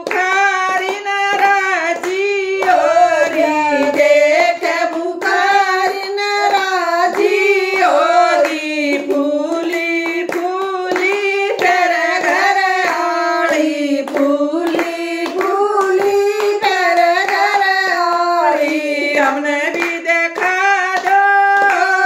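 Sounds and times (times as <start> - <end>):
hand claps: 0.0 - 22.0
women singing together: 0.0 - 22.0.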